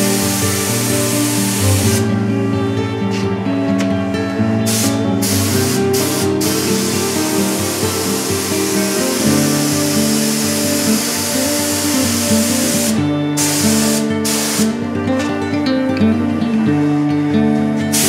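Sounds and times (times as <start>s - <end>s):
spray gun hissing: 0.0s - 2.1s, 4.7s - 14.8s
background music: 0.0s - 18.0s.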